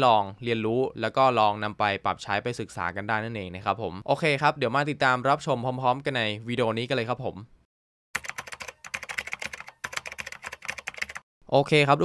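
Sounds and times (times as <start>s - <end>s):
rapid keyboard typing: 8.2s - 11.3s.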